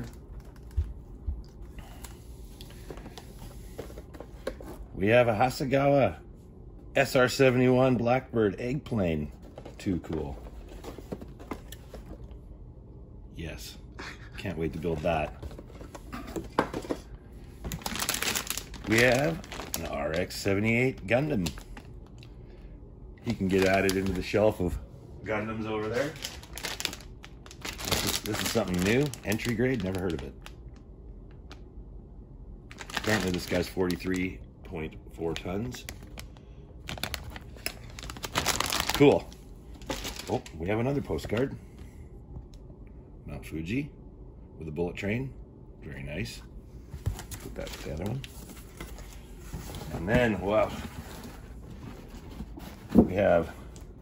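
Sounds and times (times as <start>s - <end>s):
plastic bag crinkling: 17.6s - 22.3s, 23.3s - 24.6s, 25.8s - 31.6s, 32.7s - 34.3s, 35.3s - 40.7s.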